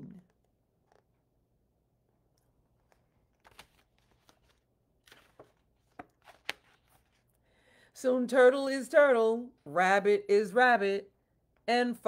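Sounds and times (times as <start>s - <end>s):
book page rustling: 2.2s - 7.4s
book handling clicks: 2.8s - 7.0s.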